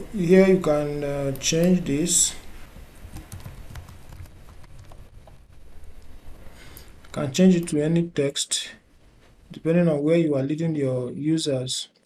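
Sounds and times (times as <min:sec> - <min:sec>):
computer keyboard typing: 0:01.2 - 0:01.8, 0:03.0 - 0:05.4.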